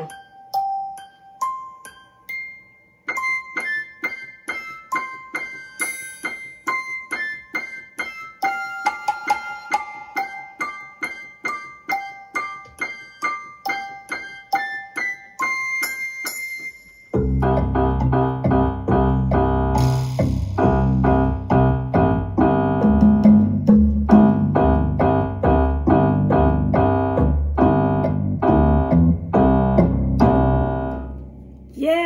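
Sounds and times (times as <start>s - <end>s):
electronic keyboard piano melody: 0.0s - 31.7s.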